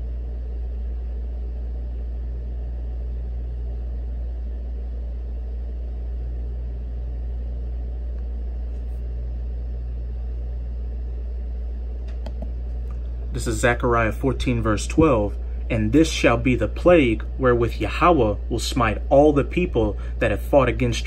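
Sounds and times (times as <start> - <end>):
low rumbling hum: 0.0 - 21.0.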